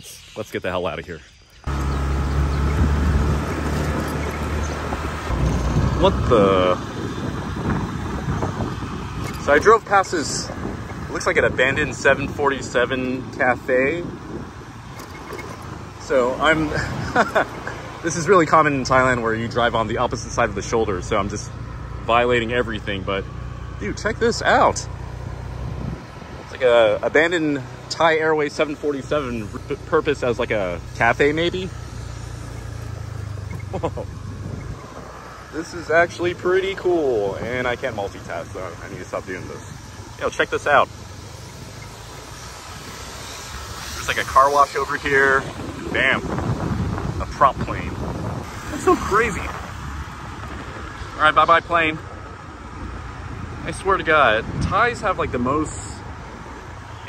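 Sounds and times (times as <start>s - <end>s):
motorbike engine and road rumble: 1.6s - 57.0s.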